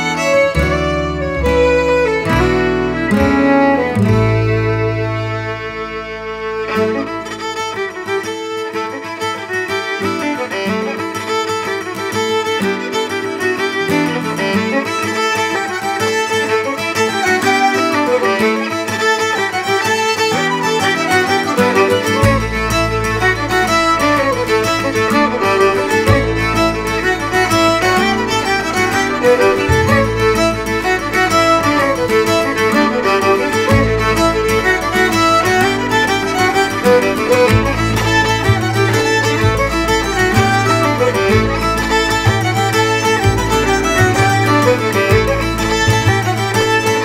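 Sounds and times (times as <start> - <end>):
fiddle playing quick melody: 0.0 - 47.0
guitar accompaniment: 0.0 - 47.0
low bass notes: 0.6 - 6.7.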